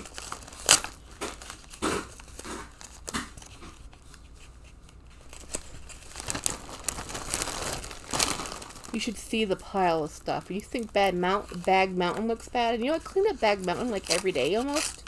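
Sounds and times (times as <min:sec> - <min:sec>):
packaging tearing: 0:00.0 - 0:04.2, 0:05.2 - 0:09.2, 0:12.3 - 0:15.0
packaging crinkling: 0:00.0 - 0:15.0.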